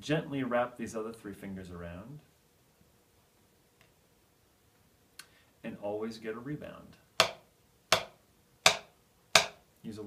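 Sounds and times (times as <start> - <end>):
drumsticks tapping a practice pad: 7.2 - 9.6.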